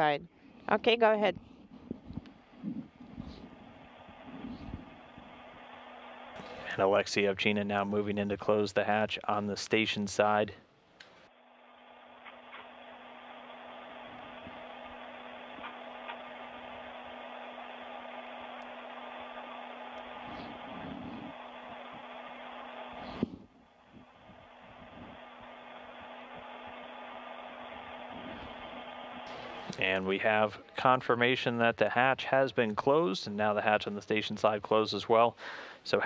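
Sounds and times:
low hum: 0.0s - 34.7s
ventilation fans hissing: 0.0s - 36.0s.

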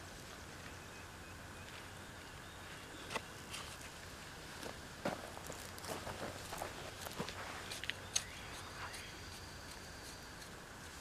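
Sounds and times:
footsteps on soil: 1.6s - 9.0s
hand trowel in garden soil: 5.5s - 11.0s.

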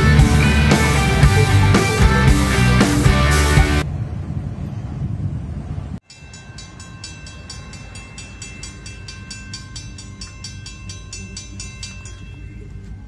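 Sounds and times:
background music: 0.0s - 3.8s
railroad crossing bell ringing: 6.0s - 13.0s.

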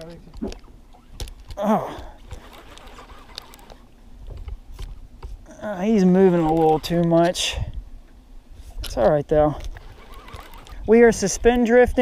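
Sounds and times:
low wind: 0.0s - 12.0s
water rumble: 0.0s - 12.0s
rod and reel clicks: 1.2s - 5.0s, 6.0s - 7.5s, 8.8s - 11.8s.

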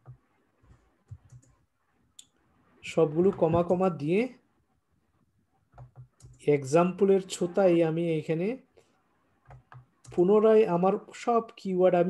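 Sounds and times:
keyboard and mouse clicks: 0.0s - 1.6s, 5.7s - 6.5s, 9.4s - 10.3s.

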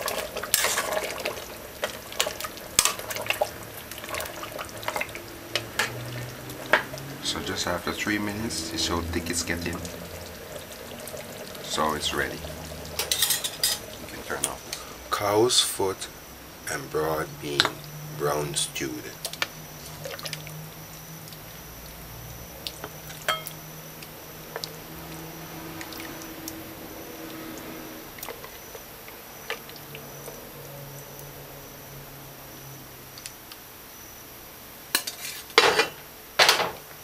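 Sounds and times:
wet stew sounds: 0.0s - 36.3s
metal ladle scraping ceramic bowl: 35.0s - 35.9s.

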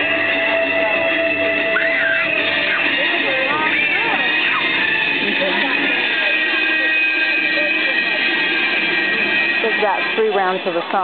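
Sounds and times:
indistinct voices chatting: 0.0s - 11.0s
steady high-pitched whine: 0.0s - 11.0s.

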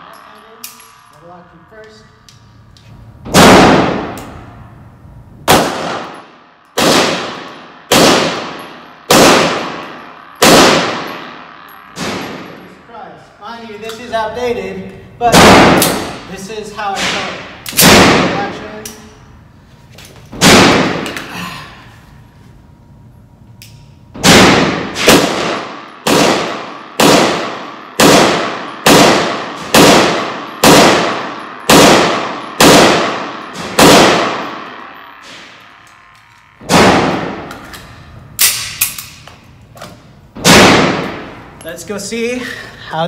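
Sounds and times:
pistol shots echoing indoors: 2.3s - 4.8s, 5.4s - 12.6s, 15.2s - 19.1s, 20.3s - 21.2s, 23.6s - 39.4s, 40.3s - 41.5s.

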